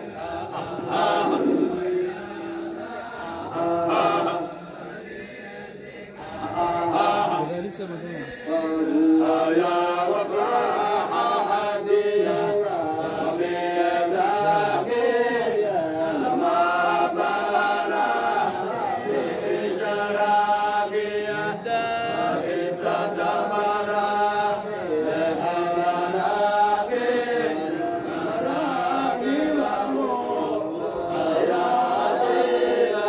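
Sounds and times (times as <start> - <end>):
men chanting in unison: 0.0 - 33.0.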